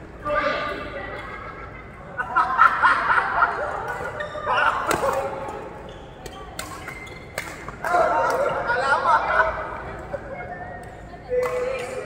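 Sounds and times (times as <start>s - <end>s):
racket hitting shuttlecock: 4.8s - 5.4s.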